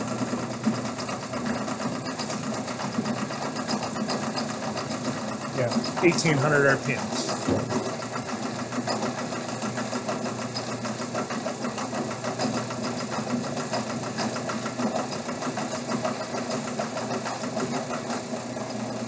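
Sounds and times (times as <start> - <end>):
electric motor humming with ticking: 0.0 - 19.0.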